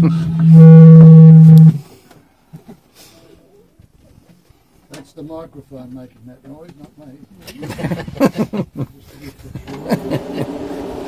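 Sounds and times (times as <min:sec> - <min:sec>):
microphone buzzy low drone: 0:00.0 - 0:01.8.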